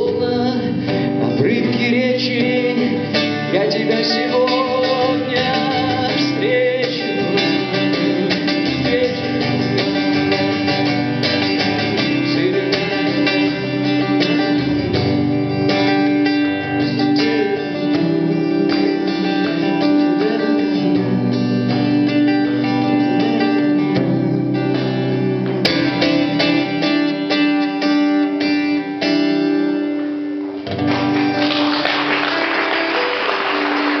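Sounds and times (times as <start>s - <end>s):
person singing: 0.0s - 27.3s
acoustic guitar playing: 0.0s - 34.0s.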